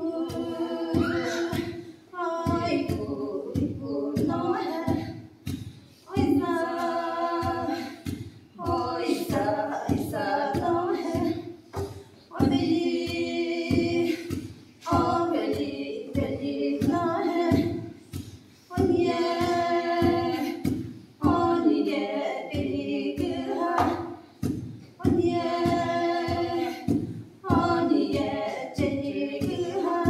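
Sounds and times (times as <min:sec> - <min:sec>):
women singing unaccompanied: 0:00.0 - 0:30.0
wooden pestles striking mortar: 0:00.2 - 0:30.0.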